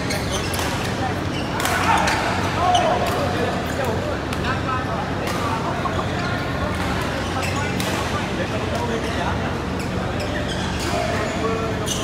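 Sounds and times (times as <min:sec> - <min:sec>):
voices in a busy hall: 0:00.0 - 0:12.0.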